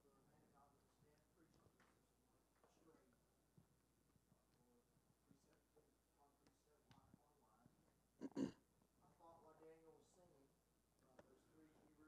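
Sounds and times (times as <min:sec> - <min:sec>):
faint background voice: 0:00.0 - 0:03.3, 0:04.1 - 0:12.0
person's throat noise: 0:08.2 - 0:08.6.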